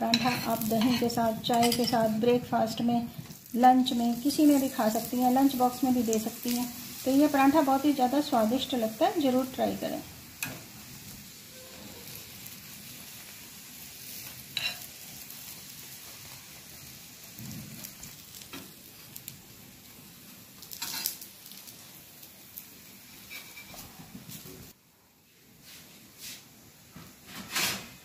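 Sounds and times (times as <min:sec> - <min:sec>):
steel spoon scraping griddle: 0:00.0 - 0:02.2, 0:14.1 - 0:15.0, 0:20.7 - 0:21.2, 0:23.1 - 0:24.0, 0:27.3 - 0:28.0
flatbread sizzling in ghee: 0:00.0 - 0:24.8.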